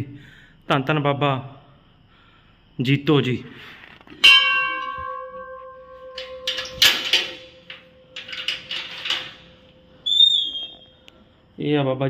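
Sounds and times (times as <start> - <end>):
brass bell ringing: 4.2 - 10.0.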